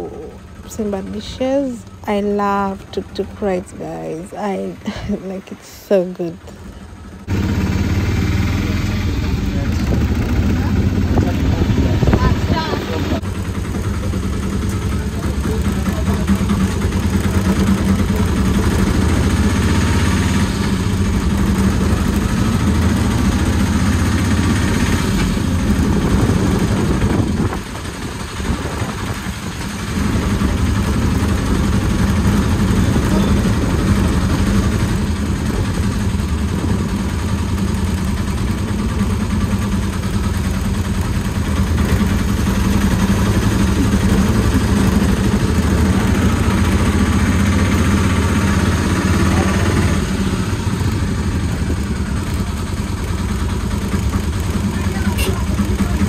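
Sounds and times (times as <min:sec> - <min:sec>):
auto-rickshaw engine running: 0:00.0 - 0:56.0.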